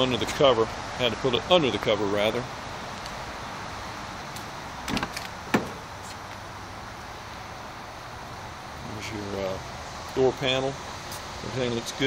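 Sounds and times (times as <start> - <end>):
car door latch clack: 4.8 - 5.8
car door handle clicks: 4.9 - 5.8.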